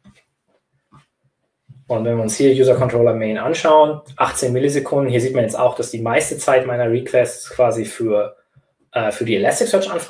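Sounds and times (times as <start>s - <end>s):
man talking: 1.8s - 10.0s
breath sounds: 8.4s - 8.9s.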